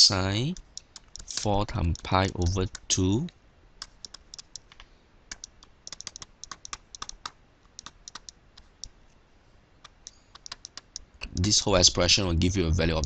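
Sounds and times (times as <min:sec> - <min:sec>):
stylus clicking on tablet: 0:00.5 - 0:09.0, 0:09.8 - 0:11.5.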